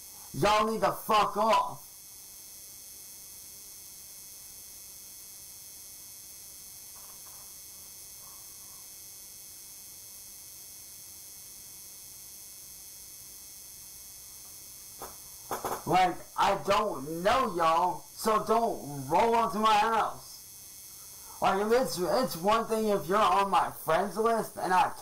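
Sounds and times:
steady hiss: 0.0 - 25.0
faint high steady tones: 6.2 - 25.0.

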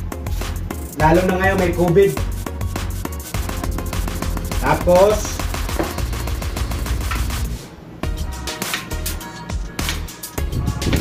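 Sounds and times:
music with heavy bass and beats: 0.0 - 11.0.

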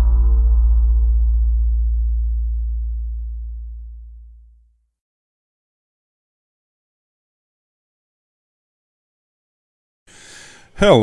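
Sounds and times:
deep low electronic tone: 0.0 - 4.8.

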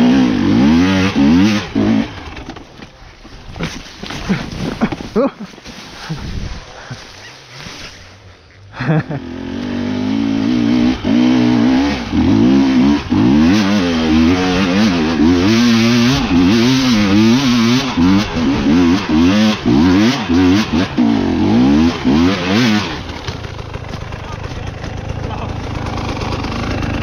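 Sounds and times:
motorcycle engine revving: 0.0 - 2.8, 7.6 - 27.0.

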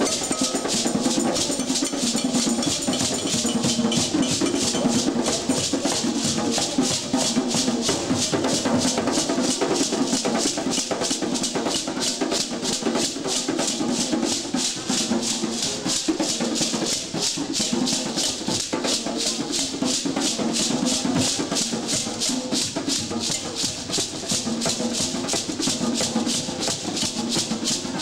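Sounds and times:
hand shaker rattling: 0.0 - 28.0.

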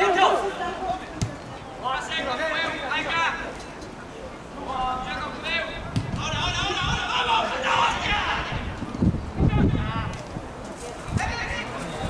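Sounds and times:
voices shouting: 5.5 - 8.8.

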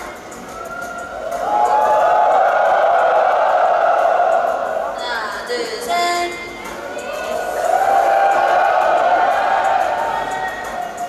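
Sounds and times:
crowd screaming and cheering: 0.0 - 5.0, 6.6 - 11.0.

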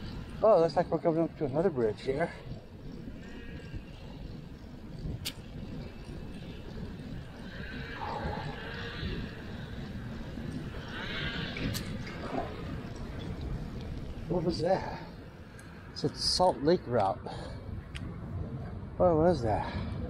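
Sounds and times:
bicycle tyres rolling on pavement: 0.0 - 20.0
wind on microphone: 0.0 - 20.0.

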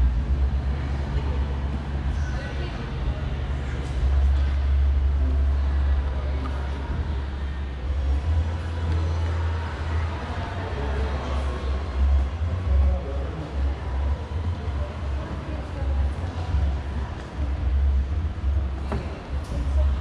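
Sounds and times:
faint indistinct voices: 0.0 - 20.0.

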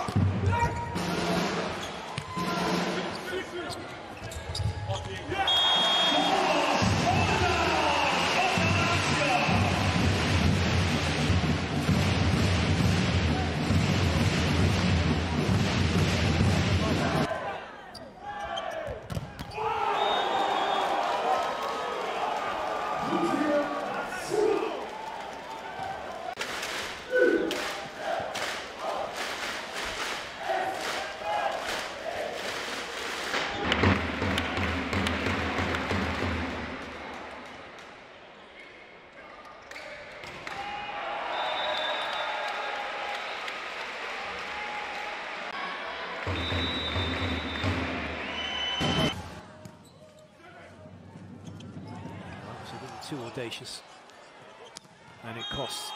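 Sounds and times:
arena crowd noise: 0.0 - 55.9.

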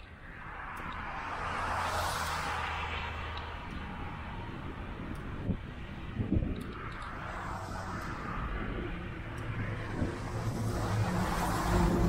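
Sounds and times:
road traffic rushing past: 0.0 - 12.0
wind on microphone: 0.0 - 12.0.

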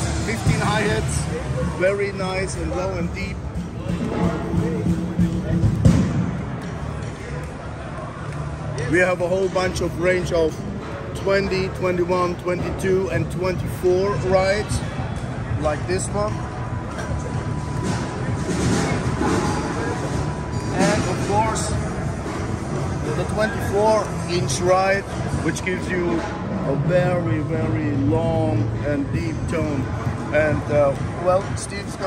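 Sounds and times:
chatter of a busy hall: 0.0 - 32.0.

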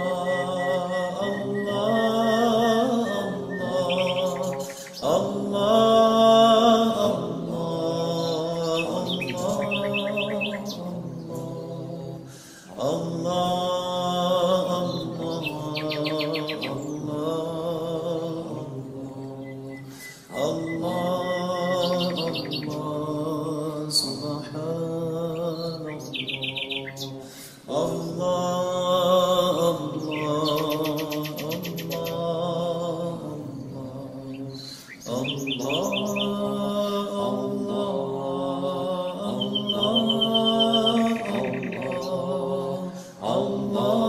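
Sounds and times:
birds chirping in trills: 0.0 - 44.0
person chanting melodic phrases: 0.0 - 44.0.

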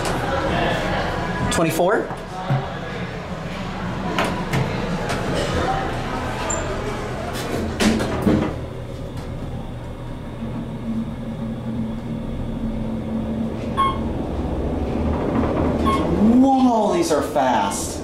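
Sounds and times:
elevator cab rumble and hum: 3.1 - 18.0
elevator doors sliding shut: 10.1 - 17.2
held tone: 10.4 - 14.2, 15.8 - 16.2
short beeps: 13.7 - 14.1, 15.8 - 16.1.

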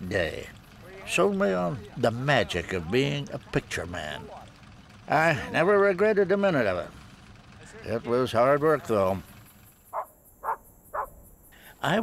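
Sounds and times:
short animal calls: 9.9 - 11.2.

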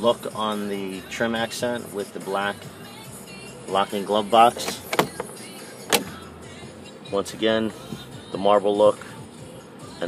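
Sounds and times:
plastic latch clicking: 4.6 - 5.3, 5.9 - 6.1.

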